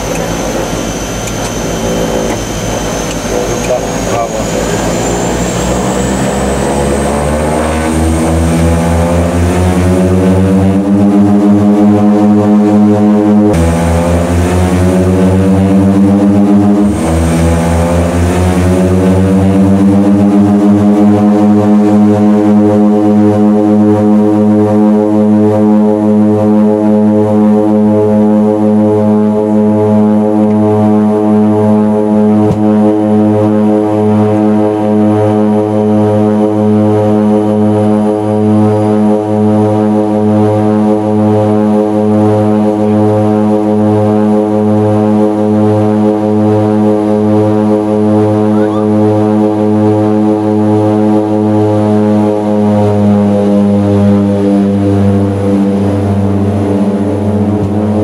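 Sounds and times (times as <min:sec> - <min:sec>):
turboprop engines droning: 0:00.0 - 0:58.0.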